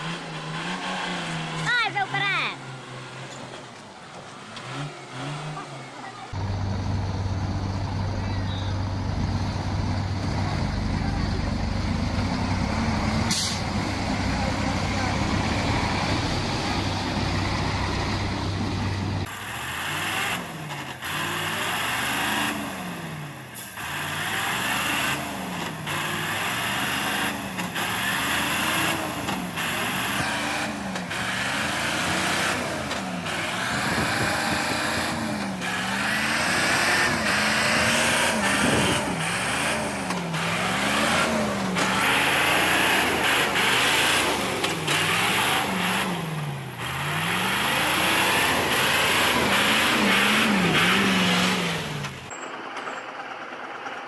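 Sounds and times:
truck engine labouring: 0.0 - 54.0.

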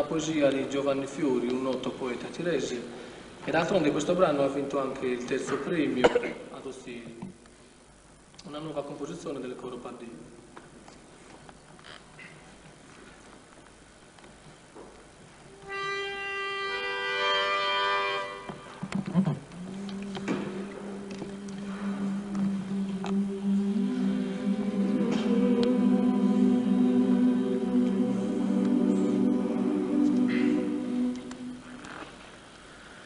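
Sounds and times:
faint hiss: 0.0 - 33.0
pitch pipe tones: 15.5 - 31.9
male choir holding a chord: 19.6 - 31.8.

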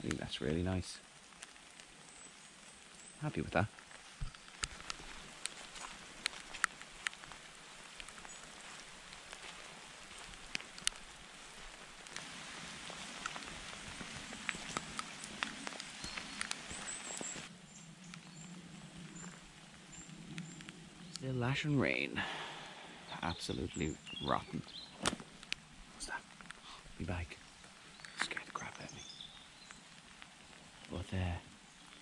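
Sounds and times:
raindrops tapping: 0.0 - 32.0
steady rain hiss: 0.0 - 32.0.

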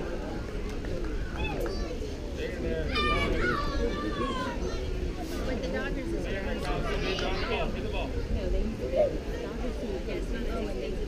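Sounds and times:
children calling and shouting: 0.0 - 11.0
murmur of voices: 0.0 - 11.0.

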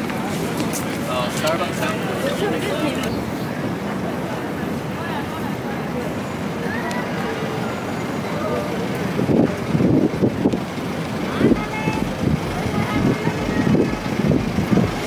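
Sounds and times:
faint voices of passers-by: 0.0 - 15.0
traffic running: 0.0 - 15.0
low rumbles: 8.8 - 15.0.

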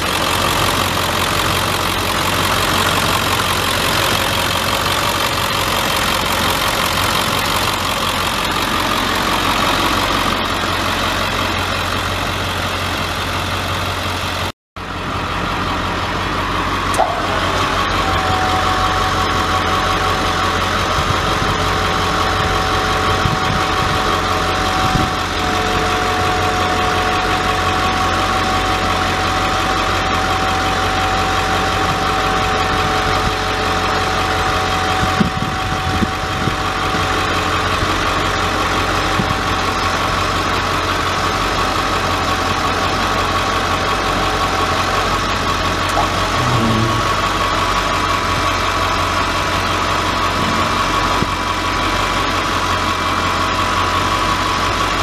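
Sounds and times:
diesel engine idling: 0.0 - 55.0
steady high whine: 15.0 - 33.4.

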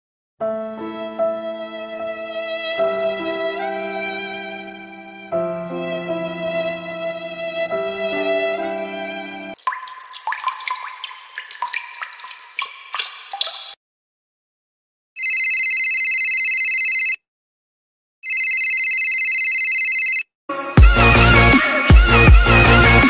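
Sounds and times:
slow violin piece: 0.5 - 9.6
telephone ringing: 15.2 - 17.2, 18.2 - 20.3.

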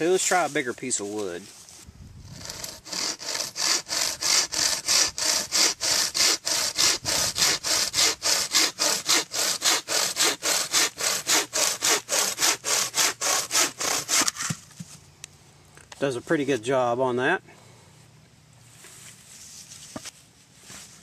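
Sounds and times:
saw cutting wooden branch: 2.2 - 14.6.

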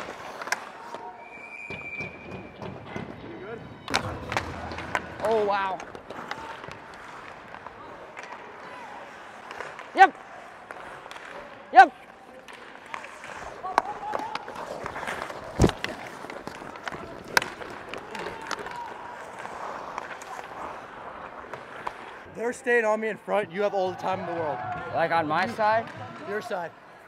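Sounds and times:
skate blades scraping ice: 0.0 - 2.5, 3.9 - 22.9
hockey sticks clicking on puck: 0.0 - 3.1, 3.9 - 22.6.

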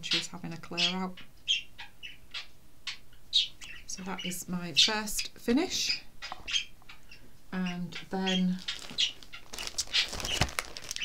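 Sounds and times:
bird chirping: 0.0 - 11.0
person speaking: 7.5 - 8.8.

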